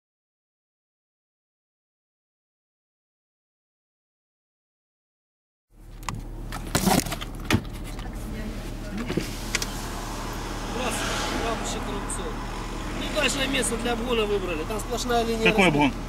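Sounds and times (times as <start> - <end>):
car engine idling: 5.8 - 16.0.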